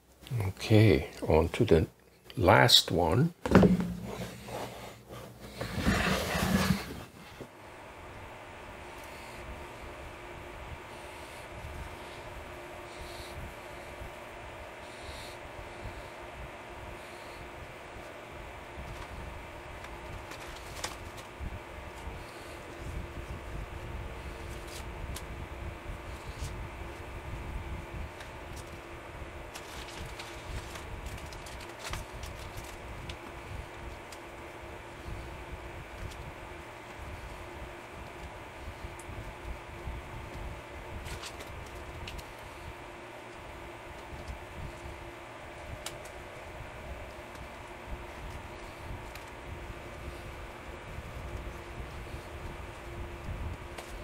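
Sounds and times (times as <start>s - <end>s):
constant hum: 0.0s - 54.0s.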